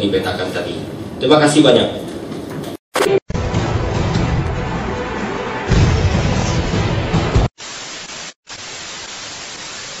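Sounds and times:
television static hiss: 7.6 - 10.0.

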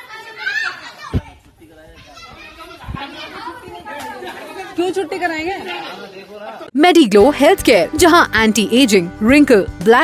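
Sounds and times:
children talking and calling out: 0.0 - 8.3.

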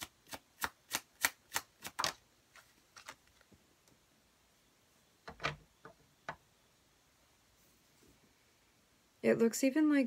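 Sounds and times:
cards being shuffled: 0.0 - 3.6.

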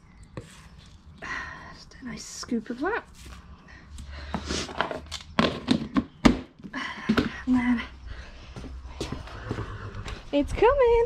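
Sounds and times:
footsteps with scuffs and knocks: 2.6 - 11.0.

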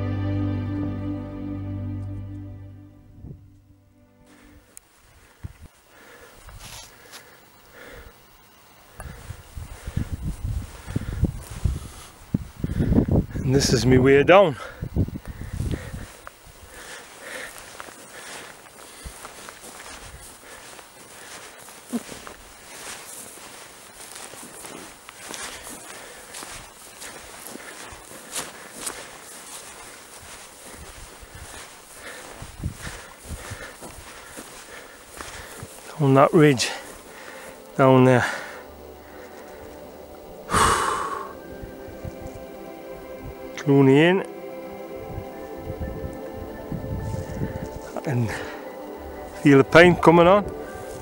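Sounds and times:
footsteps on grass: 4.2 - 8.0, 8.8 - 51.0
grass swishing: 6.5 - 7.4, 15.5 - 43.2
person sighing: 40.5 - 41.4.

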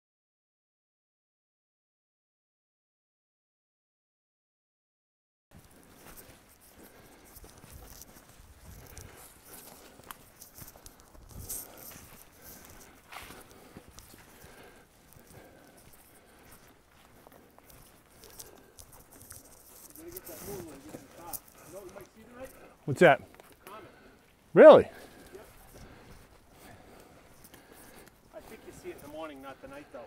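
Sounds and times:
footsteps on dry leaves: 5.5 - 23.6.

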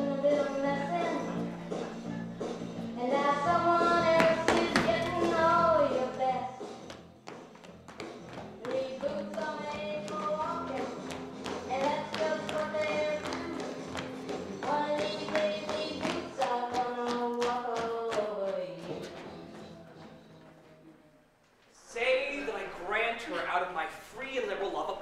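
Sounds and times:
steady beat of sharp taps: 6.7 - 20.1.

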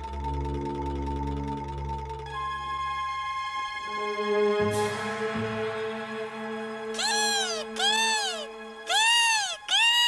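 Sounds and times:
kestrel crying: 7.0 - 10.0.

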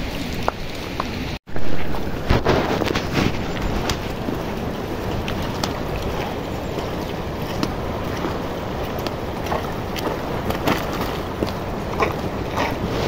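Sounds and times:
hooves clicking on stony path: 0.0 - 13.0
steady rushing noise: 1.3 - 13.0.

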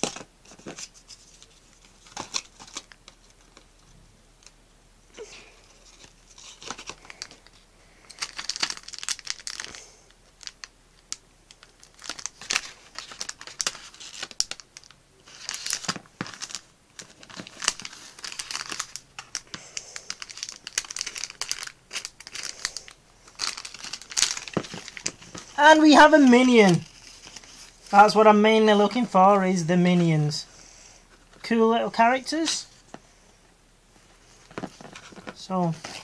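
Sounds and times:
packet wrapping tearing and crinkling: 0.0 - 3.7, 5.2 - 28.0, 34.3 - 36.0.

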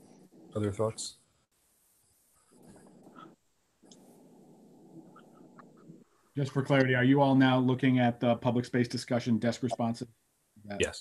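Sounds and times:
faint microphone background noise: 0.0 - 11.0.

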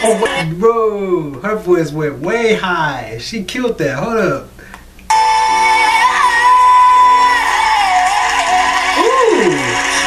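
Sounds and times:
pop backing track: 4.6 - 10.0.

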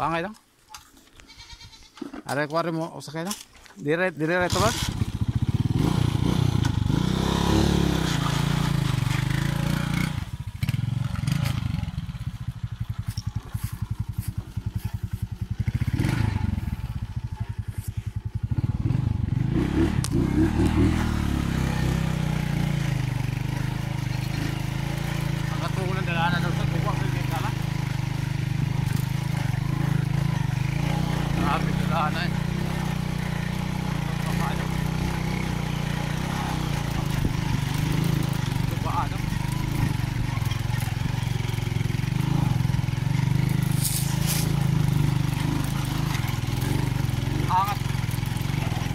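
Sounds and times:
small motorcycle engine: 4.4 - 48.9.

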